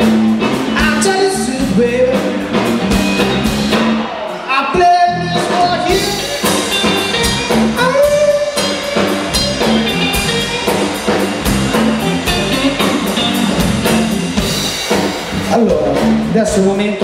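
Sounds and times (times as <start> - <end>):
electric guitar: 0.0 - 4.5, 5.1 - 17.0
bass guitar: 0.0 - 17.0
drum kit beat: 0.0 - 17.0.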